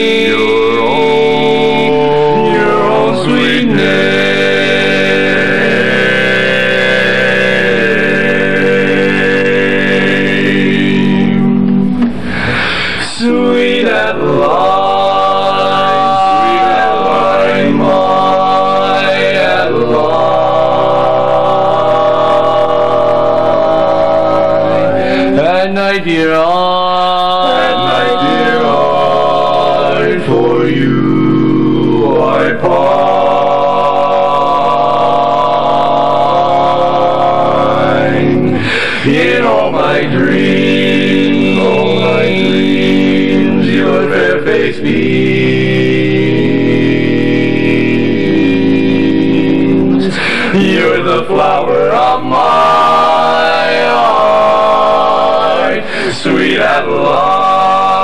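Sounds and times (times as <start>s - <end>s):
male quartet singing a cappella: 0.0s - 58.0s.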